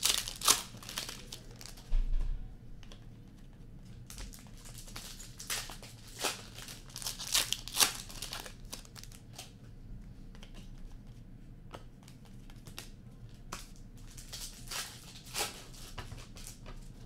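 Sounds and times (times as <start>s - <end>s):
card pack wrappers tearing: 0.0s - 1.8s, 4.1s - 9.5s, 13.7s - 16.6s.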